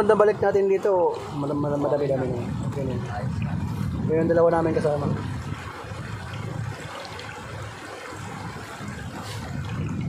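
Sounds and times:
river flowing over stones: 0.0 - 10.0.

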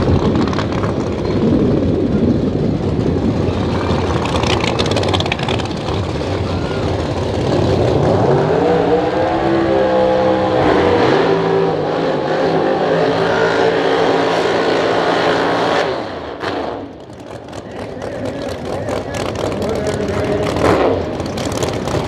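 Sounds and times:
race car engines revving: 0.0 - 22.0.

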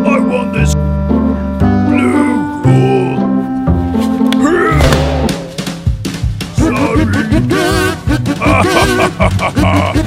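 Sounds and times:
background music with bass line: 0.0 - 10.0.

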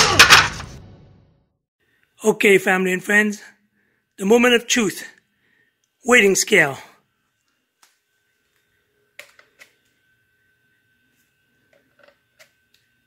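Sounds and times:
faint high whine: 4.7 - 13.0.

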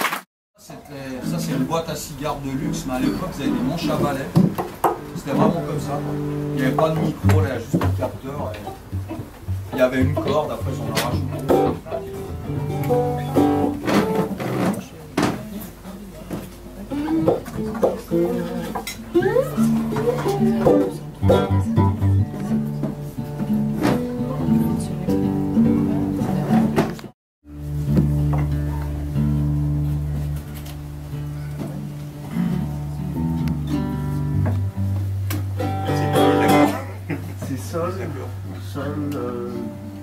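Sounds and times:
plucked bending guitar notes: 1.0 - 14.7, 16.9 - 37.1
long held low tones: 5.0 - 7.3, 10.6 - 14.0.

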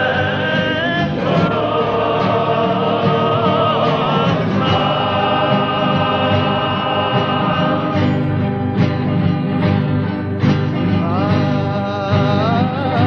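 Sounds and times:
male choir singing: 0.0 - 8.9
guitar accompaniment: 0.0 - 13.0.

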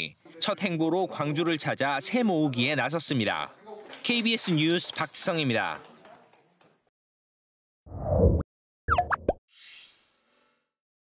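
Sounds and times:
short rising chirps: 7.9 - 10.7.

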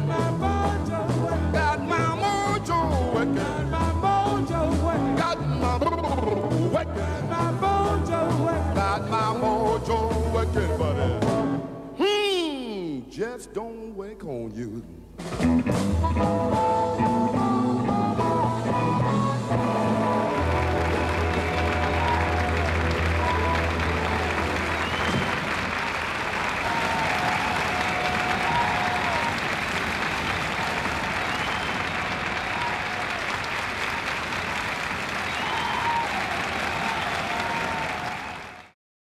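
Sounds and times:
audience applauding: 19.6 - 38.8.

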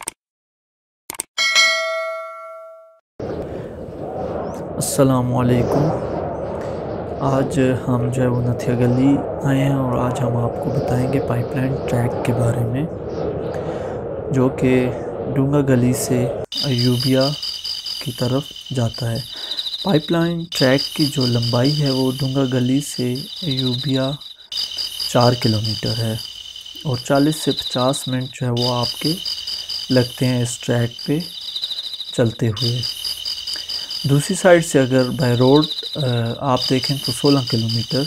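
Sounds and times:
bell-like notification ding: 1.4 - 3.0
man talking: 4.8 - 6.0, 7.2 - 12.9, 14.3 - 17.4, 18.0 - 24.2, 25.1 - 26.2, 26.8 - 29.2, 29.9 - 31.3, 32.2 - 32.9, 34.1 - 38.0
crickets trilling: 16.5 - 38.0.

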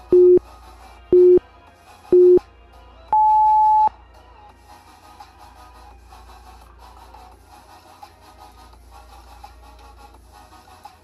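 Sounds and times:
long high timer beep: 0.0 - 0.4, 1.2 - 1.4, 3.2 - 3.9
short low timer beeps: 0.0 - 0.4, 1.2 - 1.4, 3.2 - 3.9
faint background music: 0.0 - 11.0.

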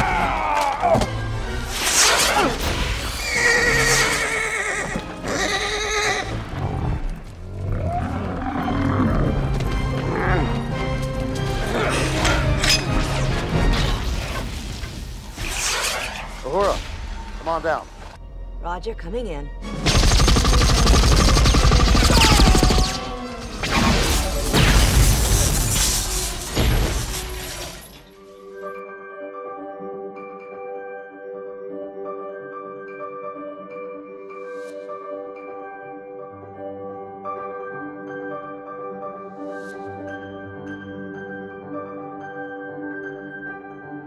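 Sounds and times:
orchestral film score: 0.0 - 44.0
horse whinnying: 3.0 - 6.7
rapid automatic gunfire: 19.8 - 22.9.

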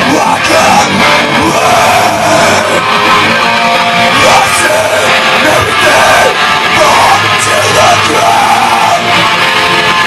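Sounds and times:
electric guitars: 0.0 - 10.0
singer screaming: 0.0 - 10.0.

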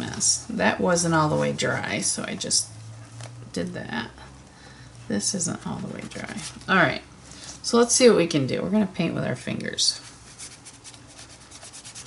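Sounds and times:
fingers rubbing paper: 10.3 - 12.0.

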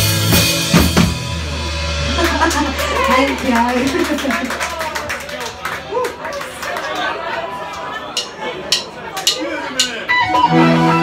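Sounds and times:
audience chatter: 1.2 - 11.0.

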